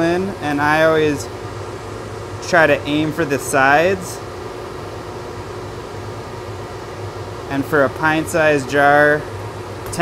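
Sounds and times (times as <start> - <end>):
blower fan running: 0.0 - 10.0.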